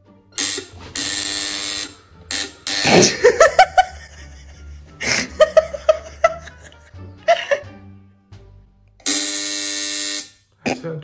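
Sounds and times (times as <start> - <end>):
intercom buzzer: 0.4 - 3.4, 9.0 - 10.5.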